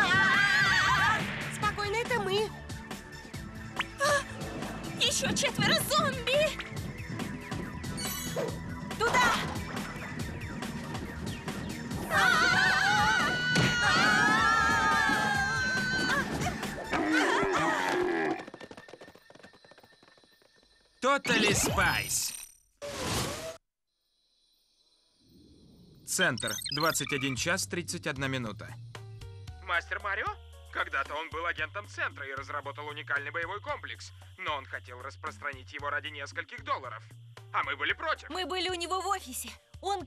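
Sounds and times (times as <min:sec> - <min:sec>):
cartoon girls screaming: 0:00.0 - 0:01.2, 0:12.0 - 0:18.1
background music: 0:00.0 - 0:18.6, 0:27.2 - 0:40.0
patter of cartoon hoofbeats: 0:14.3 - 0:21.0.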